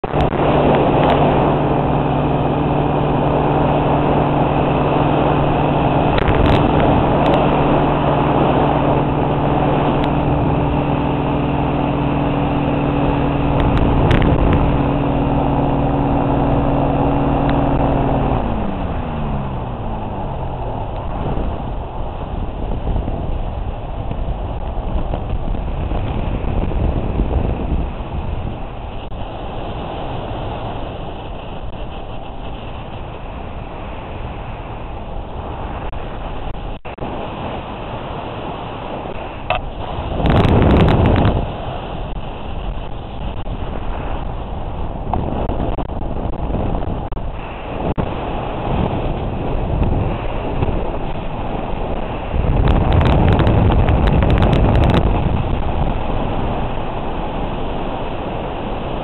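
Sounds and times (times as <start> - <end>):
engine winding down: 0.0 - 37.5
aircraft engine running: 0.0 - 59.0
rush of airflow: 0.0 - 59.0.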